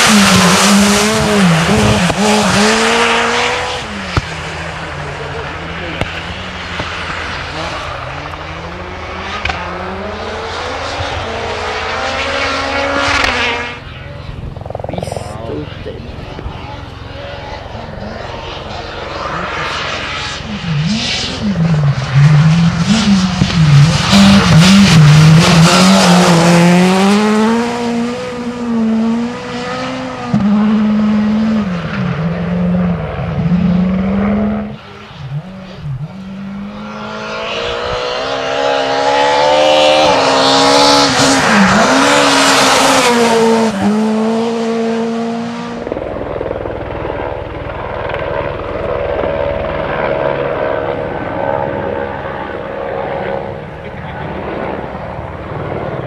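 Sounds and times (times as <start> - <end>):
distant car engine: 0.0 - 56.0
rally car engine at full throttle: 0.0 - 56.0.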